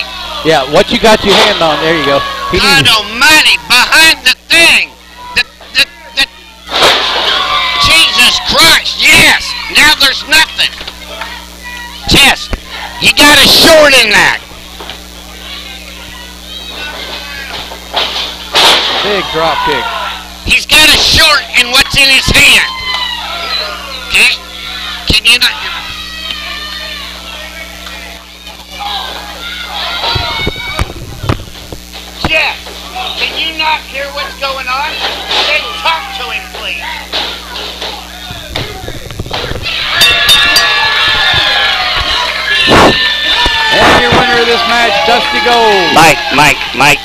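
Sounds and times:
crowd chatter: 0.0s - 20.5s, 21.3s - 47.0s
electrical hum: 0.0s - 47.0s
voices: 0.0s - 47.0s
loud burst of noise: 6.6s - 23.3s, 29.3s - 47.0s.

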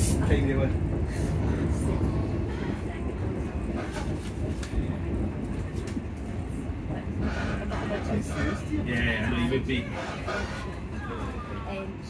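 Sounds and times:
train carriage rumble: 0.0s - 12.0s.

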